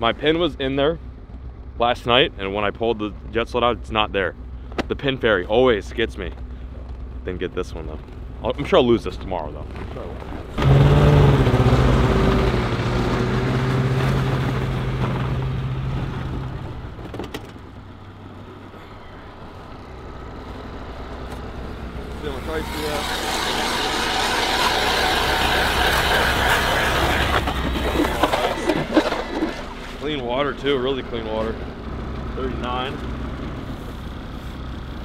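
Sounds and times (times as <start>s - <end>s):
snowmobile engine running: 5.5s - 17.0s, 18.0s - 35.0s
ice auger grinding: 10.6s - 15.4s, 21.3s - 30.7s.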